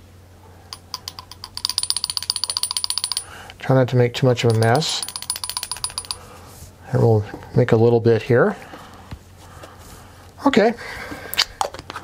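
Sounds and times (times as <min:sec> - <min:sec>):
pen converter piston ratchet clicks: 0:00.8 - 0:03.3, 0:04.5 - 0:06.2.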